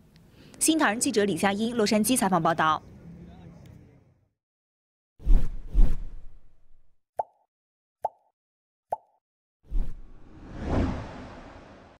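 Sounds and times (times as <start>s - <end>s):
wash of noise: 10.1s - 12.0s.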